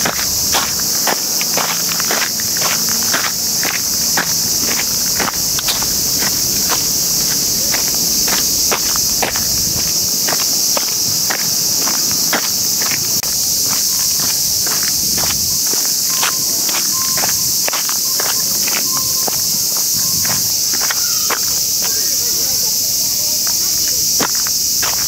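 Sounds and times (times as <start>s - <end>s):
footsteps on paved path: 0.0s - 25.0s
insects chorus: 0.0s - 25.0s.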